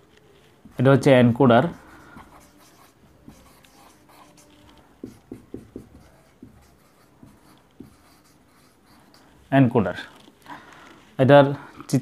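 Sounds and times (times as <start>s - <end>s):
marker writing on whiteboard: 0.6s - 9.5s.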